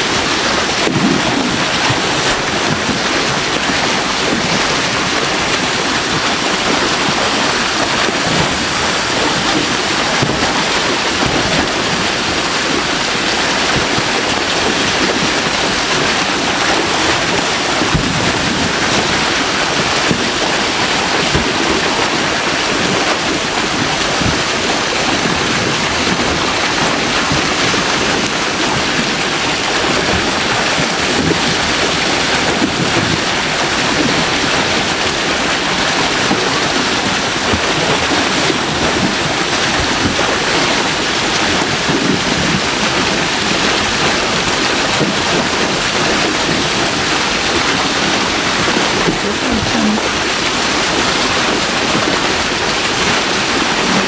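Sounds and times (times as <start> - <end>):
water pouring over a weir: 0.0 - 54.0.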